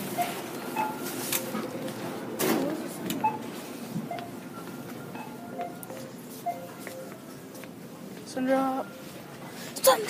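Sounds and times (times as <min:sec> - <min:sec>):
store background noise: 0:00.0 - 0:10.0.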